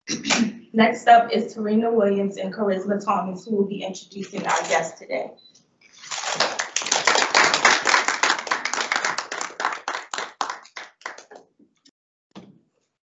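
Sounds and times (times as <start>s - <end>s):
audience applauding: 6.0s - 11.4s.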